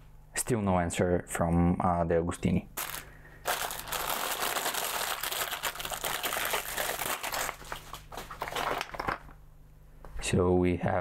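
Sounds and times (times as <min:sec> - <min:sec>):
plastic packaging crinkling: 0:02.8 - 0:09.4.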